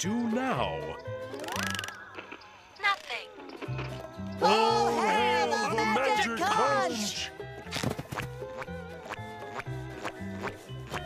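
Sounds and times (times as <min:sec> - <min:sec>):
background music: 0:00.0 - 0:11.0
pull string clicking whir: 0:01.2 - 0:04.1.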